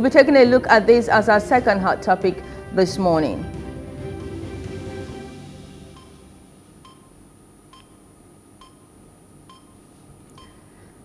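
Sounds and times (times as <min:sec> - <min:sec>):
low hum: 0:00.0 - 0:09.0
soft electronic beeps: 0:06.8 - 0:08.0.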